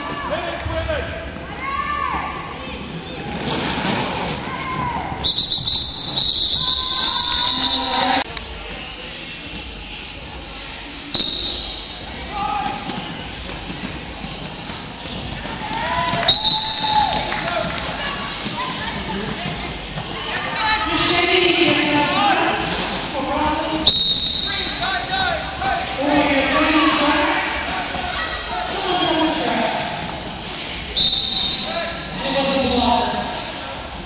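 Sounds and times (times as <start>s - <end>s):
referee whistle blasts: 5.2s - 8.2s, 11.2s - 12.1s, 16.2s - 17.2s, 23.8s - 24.9s, 31.0s - 31.8s.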